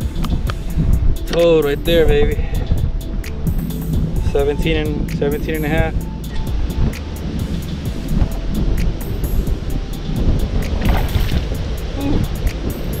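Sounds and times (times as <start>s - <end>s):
music with steady beat: 0.0s - 13.0s
wind rumble on microphone: 0.0s - 13.0s.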